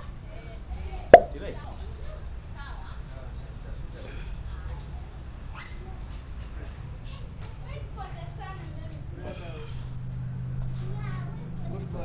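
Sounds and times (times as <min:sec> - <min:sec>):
sharp smack: 0:01.2 - 0:01.4.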